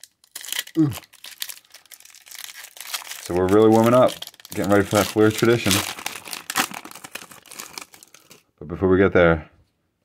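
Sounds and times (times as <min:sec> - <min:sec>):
foil wrapper crinkling and tearing: 0:00.0 - 0:08.5.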